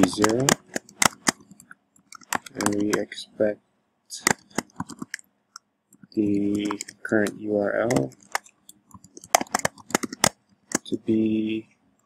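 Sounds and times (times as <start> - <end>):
typing on computer keyboard: 0.0 - 3.1, 4.2 - 5.3, 6.0 - 10.9.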